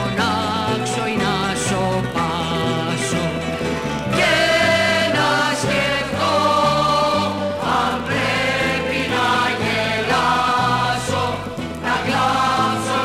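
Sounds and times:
instrumental accompaniment: 0.0 - 13.0
stepping bass line: 0.0 - 13.0
choir singing: 4.1 - 13.0.

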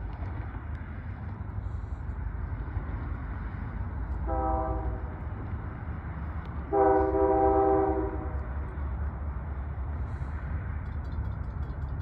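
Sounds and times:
locomotive rumble: 0.0 - 12.0
locomotive air horn chord: 4.2 - 5.2, 6.7 - 8.5.

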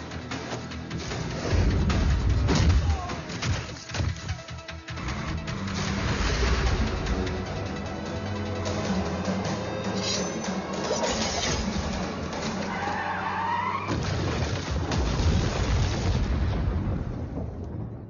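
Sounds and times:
dramatic film music: 0.0 - 15.3.

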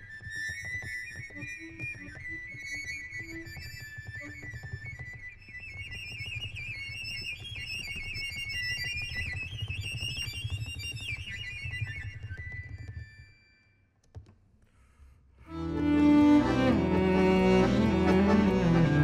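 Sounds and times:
cello and accordion playing: 15.5 - 19.0.

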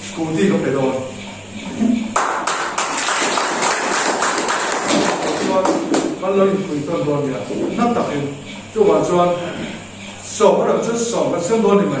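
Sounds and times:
small group clapping: 2.1 - 6.2.

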